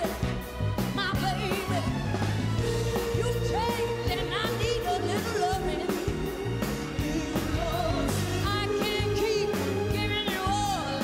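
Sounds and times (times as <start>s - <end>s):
band with keyboards and orchestra: 0.0s - 11.0s
steady drum beat: 0.0s - 11.0s
women singing: 2.9s - 11.0s.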